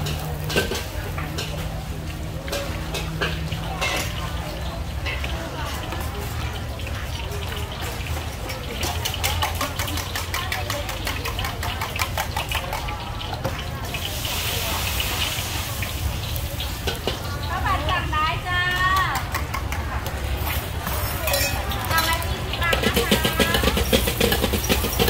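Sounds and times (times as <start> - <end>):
gas burner roaring: 0.0 - 5.2, 13.8 - 19.2, 20.0 - 25.0
metal clinks of ladle and cup: 20.8 - 22.2.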